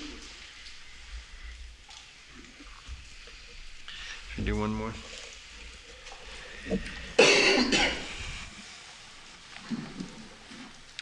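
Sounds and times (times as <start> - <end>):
person coughing: 7.2 - 8.2.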